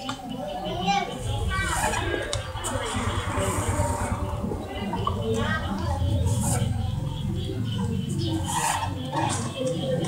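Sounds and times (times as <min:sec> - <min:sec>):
children's voices: 0:00.0 - 0:10.0
people talking: 0:00.0 - 0:10.0
low rumble: 0:01.1 - 0:07.7.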